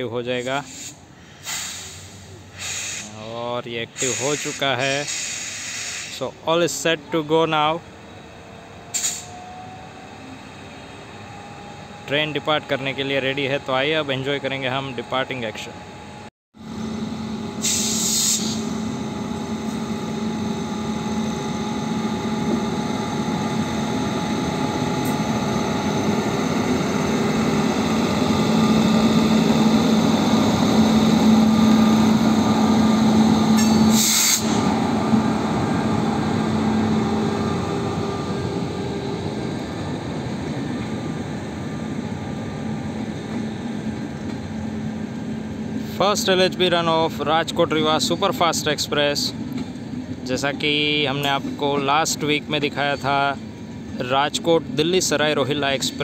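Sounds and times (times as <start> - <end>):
electric locomotive hum: 0.0 - 56.0.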